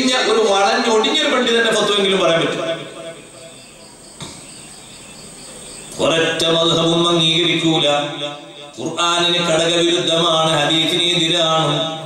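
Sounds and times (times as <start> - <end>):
faint insect chirping: 0.3 - 8.8.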